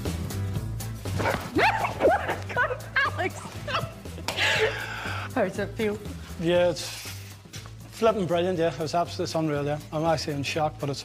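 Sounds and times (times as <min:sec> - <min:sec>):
background music with low beat: 0:00.0 - 0:11.0
excited squeals and whoops: 0:01.5 - 0:03.2.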